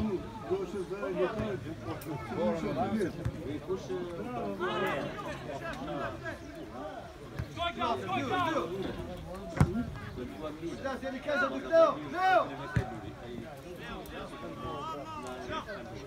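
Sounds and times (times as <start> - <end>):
men calling and shouting: 0.0 - 16.0
ball kicked thud: 9.5 - 9.9.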